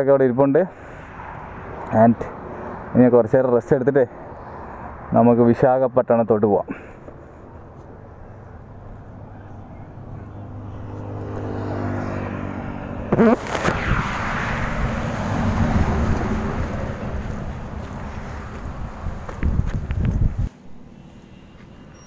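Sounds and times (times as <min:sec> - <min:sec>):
engine hum: 0:06.7 - 0:22.0
vehicle rushing past: 0:09.0 - 0:22.0
brief wavering tone: 0:20.7 - 0:22.0.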